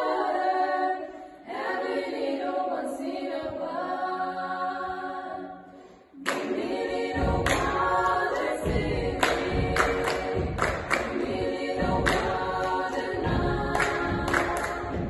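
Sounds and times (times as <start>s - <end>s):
female choir singing: 0.0s - 15.0s
hand claps: 6.2s - 15.0s.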